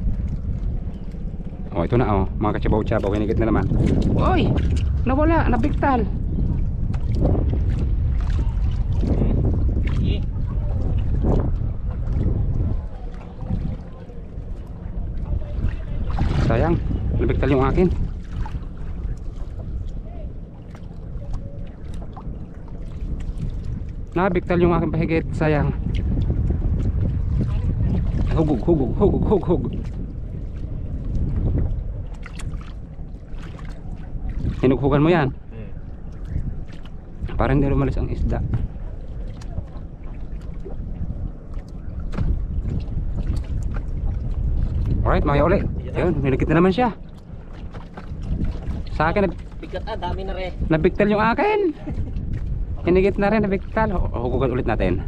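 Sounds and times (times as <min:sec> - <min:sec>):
water washing against boat hull: 0:00.0 - 0:55.0
wind rumbling on microphone: 0:00.0 - 0:55.0.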